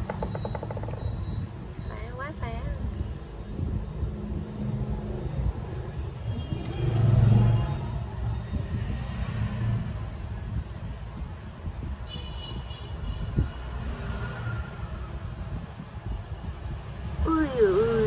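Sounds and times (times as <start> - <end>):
road traffic rumble: 0.0 - 18.0.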